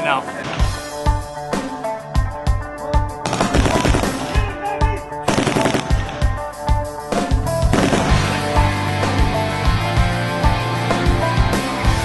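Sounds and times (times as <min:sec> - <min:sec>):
rock music with steady beat: 0:00.0 - 0:12.0
automatic rifle fire: 0:03.2 - 0:04.4, 0:05.3 - 0:06.3, 0:07.7 - 0:08.4.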